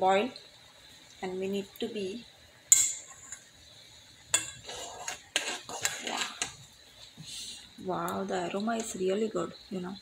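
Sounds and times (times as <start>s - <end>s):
tea boiling: 0.0s - 10.0s
metal spoon scraping saucepan: 2.7s - 3.5s, 4.3s - 6.6s.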